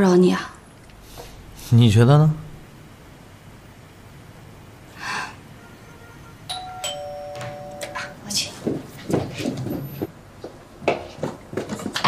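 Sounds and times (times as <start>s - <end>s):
two-note doorbell chime: 6.5s - 8.2s.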